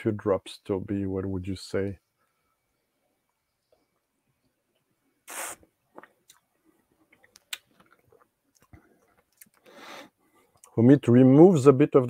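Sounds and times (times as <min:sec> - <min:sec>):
wet mouth clicks and lip smacks: 0:05.3 - 0:06.5, 0:07.1 - 0:09.7
breathy draw of air: 0:09.6 - 0:10.3.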